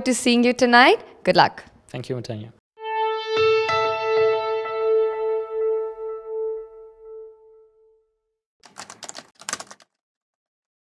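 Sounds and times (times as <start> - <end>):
held music note: 2.8 - 8.0
rapid clatter of clicks: 8.6 - 10.0.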